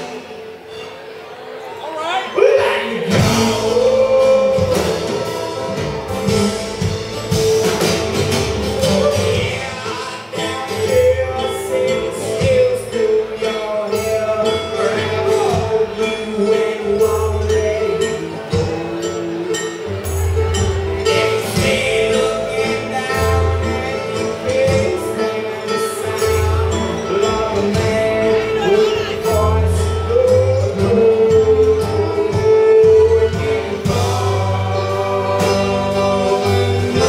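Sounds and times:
strummed acoustic guitars: 0:02.3 - 0:37.0
person singing: 0:02.4 - 0:07.3, 0:08.6 - 0:20.4, 0:21.1 - 0:37.0
plucked upright bass: 0:03.1 - 0:37.0.

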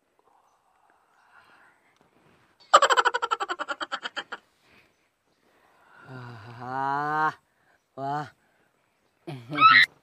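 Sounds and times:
young man's drawn-out aaah: 0:09.3 - 0:09.9.

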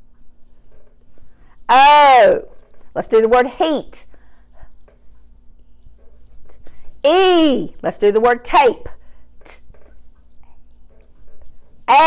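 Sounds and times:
low electrical hum: 0:00.0 - 0:12.0
spoken prompts: 0:01.7 - 0:04.1, 0:07.1 - 0:09.6.

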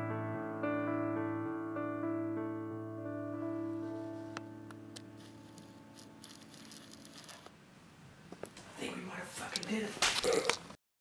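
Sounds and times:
piano chord ringing: 0:00.0 - 0:06.3
light rustling: 0:05.1 - 0:07.5.

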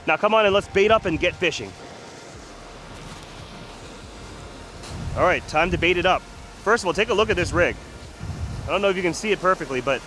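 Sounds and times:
ocean surf breaking: 0:00.0 - 0:10.0
wind rumble on microphone: 0:00.5 - 0:10.0.

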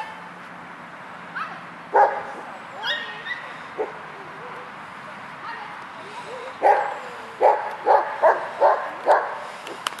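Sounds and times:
dog barking: 0:02.0 - 0:04.0, 0:06.6 - 0:09.4.

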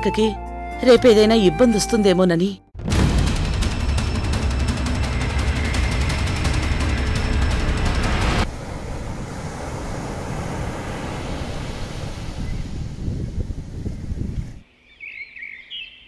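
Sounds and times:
background music: 0:00.0 - 0:08.5
steady rumbling ambient noise: 0:03.0 - 0:11.6
birds chirping: 0:12.4 - 0:16.0.

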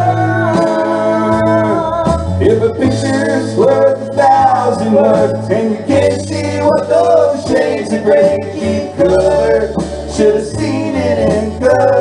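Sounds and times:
guitar: 0:00.0 - 0:12.0
live band playing country song: 0:00.0 - 0:12.0.

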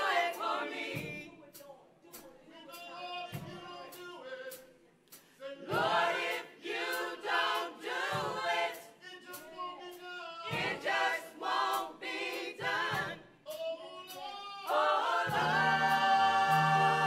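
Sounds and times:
choir singing gospel: 0:00.0 - 0:17.0.

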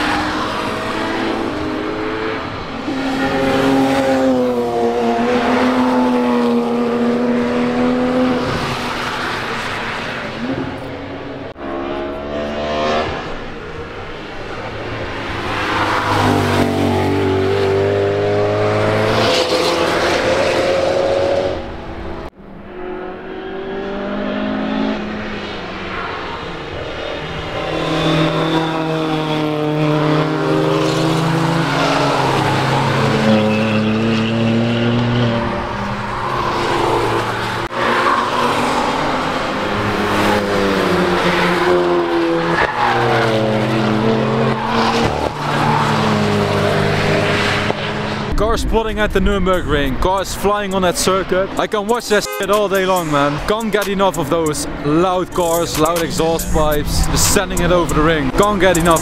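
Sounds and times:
race cars passing at speed: 0:00.0 - 0:59.0.

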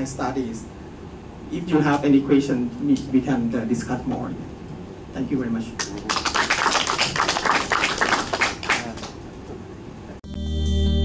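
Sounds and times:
small group applauding: 0:05.8 - 0:09.2.

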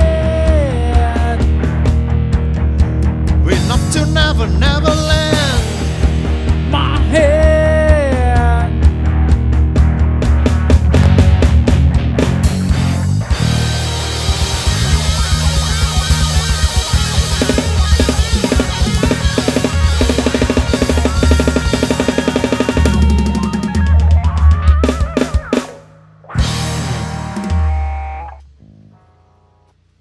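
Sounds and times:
drum fills and rolls: 0:00.0 - 0:28.6
live rock band playing: 0:00.0 - 0:29.1.

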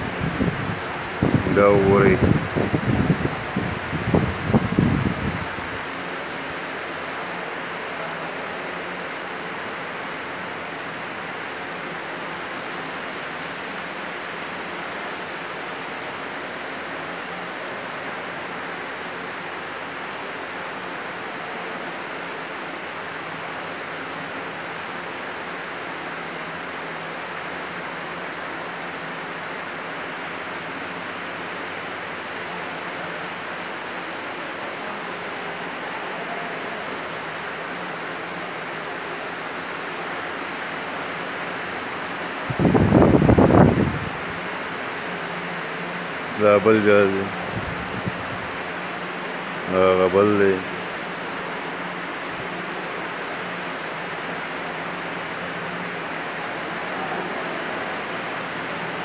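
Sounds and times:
ventilation fans hissing: 0:00.0 - 0:59.0.

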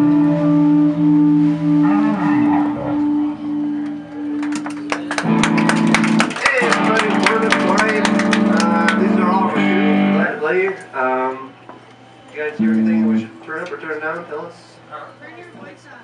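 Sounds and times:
electric guitar playing: 0:00.0 - 0:13.7.

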